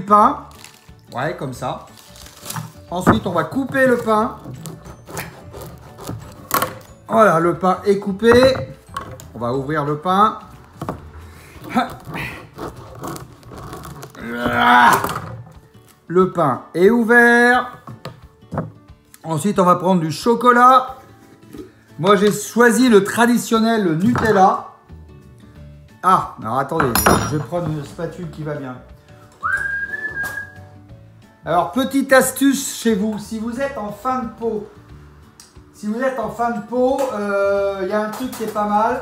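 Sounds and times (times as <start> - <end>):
faint background music: 0.0 - 39.0
knife scraping bread roll: 4.0 - 6.8, 11.4 - 14.2
whistled note sliding upward: 29.4 - 30.6.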